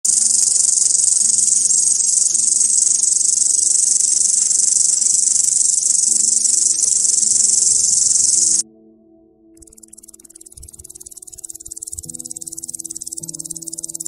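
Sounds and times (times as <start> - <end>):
crickets trilling: 0.0 - 8.6, 9.6 - 14.0.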